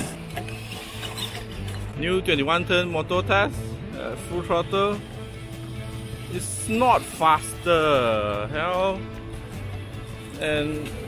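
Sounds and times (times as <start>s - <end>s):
toy truck motors whirring: 0.0s - 1.9s, 4.3s - 8.4s.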